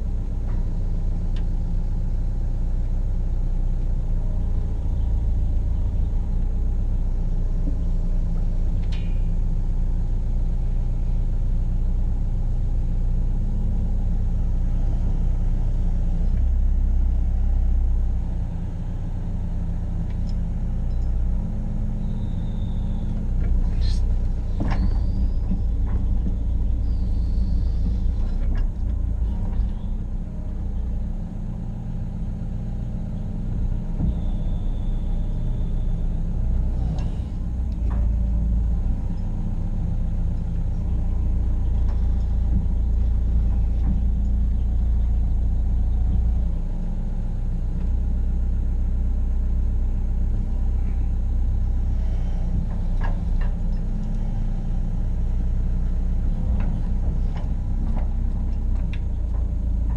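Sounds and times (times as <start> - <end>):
excavator diesel engine running: 0.0 - 59.9.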